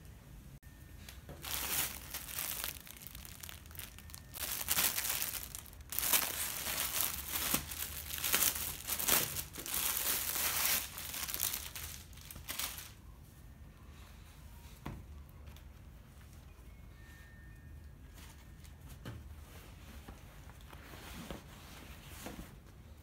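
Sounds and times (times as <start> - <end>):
plastic bag crinkling: 1.3 - 13.0.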